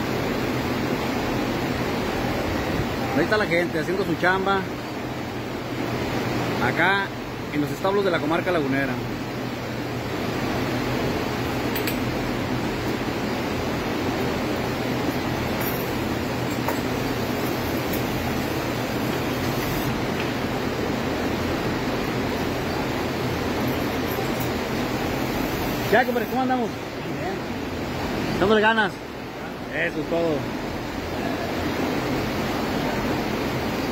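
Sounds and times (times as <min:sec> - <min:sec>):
milking machinery hum and hiss: 0:00.0 - 0:33.9.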